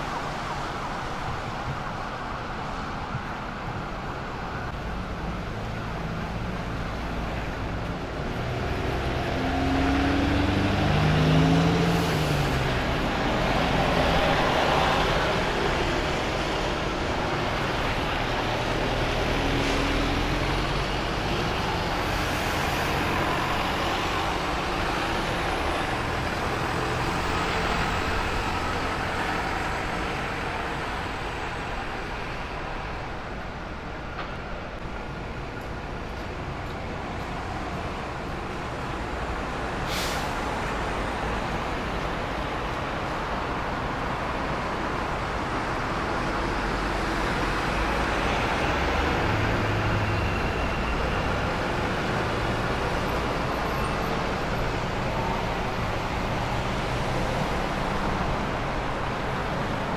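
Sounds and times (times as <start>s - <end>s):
traffic on wet road: 0.0s - 59.9s
bus engine passing: 4.1s - 59.9s.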